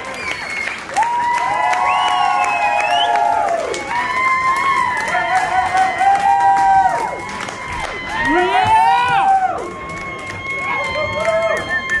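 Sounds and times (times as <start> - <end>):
audience whooping and cheering: 0.0 - 12.0.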